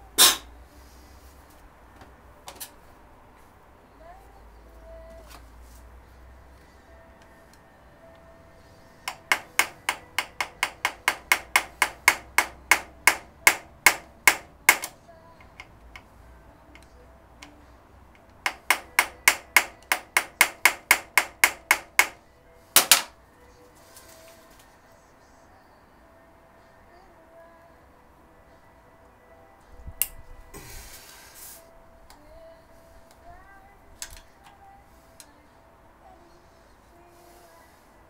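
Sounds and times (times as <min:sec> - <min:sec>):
hammer tapping steel rod: 0:00.2 - 0:00.5, 0:09.0 - 0:16.1, 0:18.2 - 0:22.2, 0:22.8 - 0:23.1.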